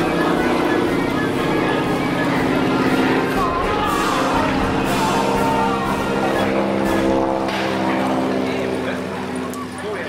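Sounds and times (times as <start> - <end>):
radial aircraft engine droning overhead: 0.0 - 10.0.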